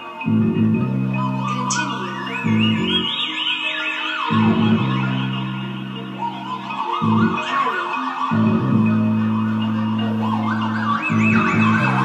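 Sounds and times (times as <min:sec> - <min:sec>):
warbling siren-like tone: 0:00.0 - 0:12.0
low bass drone: 0:00.3 - 0:03.2, 0:04.3 - 0:07.4, 0:08.4 - 0:12.0.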